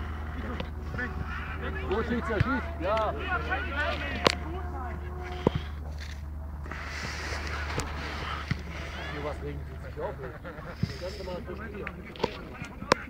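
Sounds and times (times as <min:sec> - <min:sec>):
low wind rumble on microphone: 0:00.0 - 0:13.0
players shouting: 0:00.0 - 0:13.0
ball being kicked: 0:07.7 - 0:09.0.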